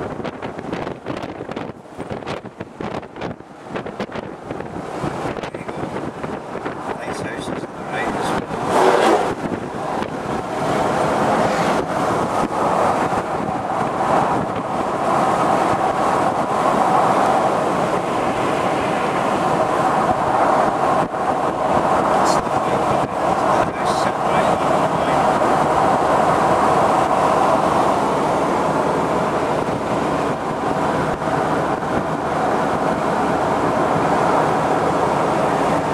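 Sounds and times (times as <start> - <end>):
tyre and road noise: 0.0 - 35.9
wind rushing through open car: 0.0 - 35.9.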